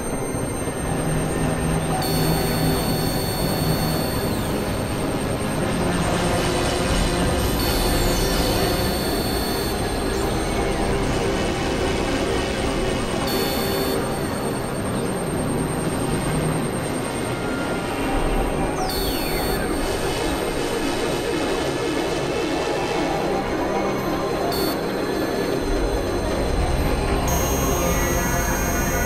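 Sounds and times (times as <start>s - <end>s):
overlapping music drone: 0.1s - 29.0s.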